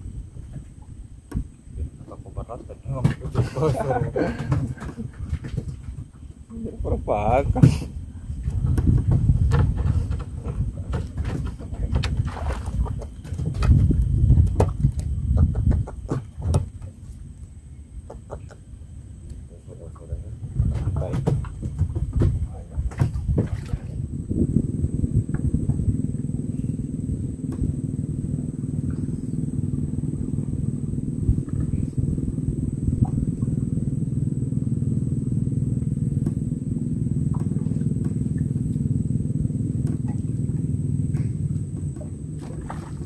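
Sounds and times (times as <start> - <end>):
boat engine running: 0.0 - 43.0
knocks: 20.6 - 23.6.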